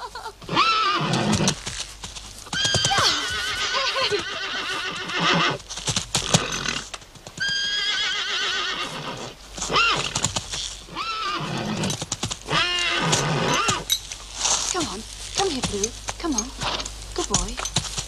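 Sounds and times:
horse neighing: 0.4 - 1.6, 2.5 - 5.6, 6.2 - 10.2, 10.9 - 13.9
hooves stamping: 0.4 - 18.0.

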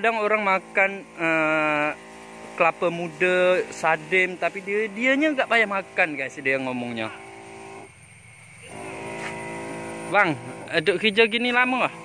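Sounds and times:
electric sprayer pump humming: 0.0 - 12.0.

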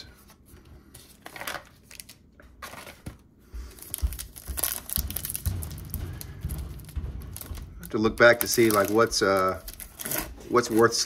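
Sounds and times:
foil wrapper crinkling: 3.7 - 5.6.

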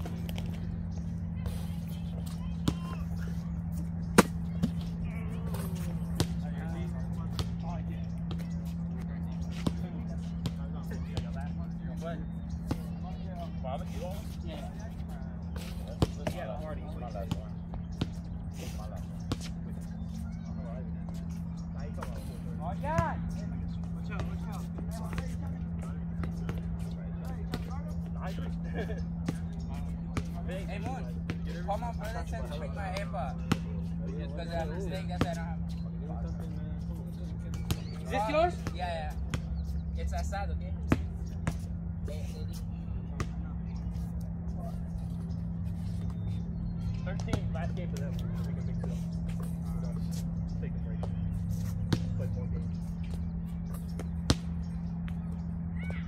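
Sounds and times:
players' voices: 0.0 - 56.0
steady low hum: 0.0 - 56.0
basketball bouncing on concrete: 32.9 - 33.8, 53.9 - 55.2.

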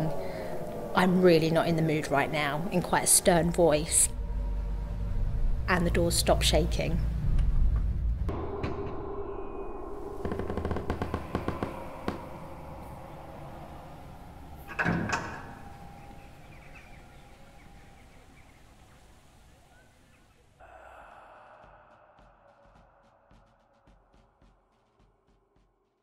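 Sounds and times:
ringing drone: 8.3 - 18.3
faint music: 10.2 - 20.6.

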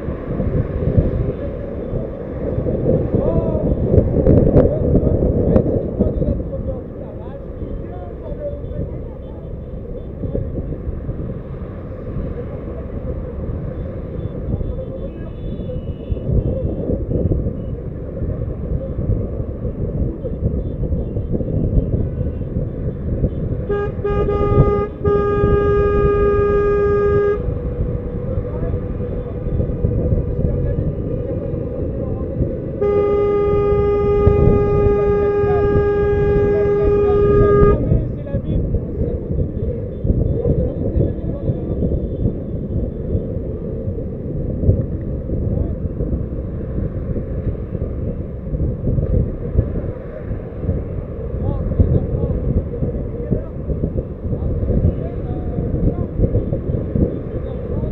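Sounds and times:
car road rumble: 0.0 - 57.9
car horn blasts: 13.8 - 16.8, 20.4 - 27.7, 32.7 - 38.0
higher-pitched horn: 23.6 - 27.6, 32.8 - 37.9.

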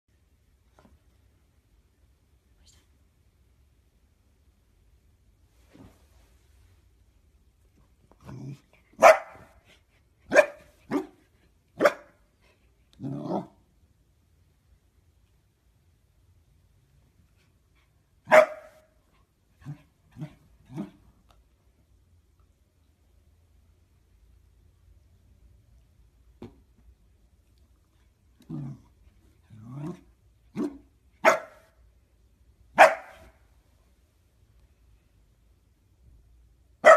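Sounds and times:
quiet low sound: 0.1 - 36.8
dog barking sharply: 9.0 - 9.5, 11.8 - 12.2, 18.3 - 18.8, 30.6 - 31.7, 32.8 - 33.4.

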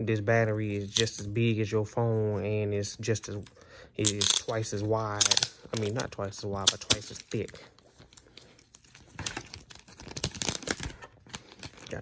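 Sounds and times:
plastic packaging crinkling: 4.0 - 12.0.

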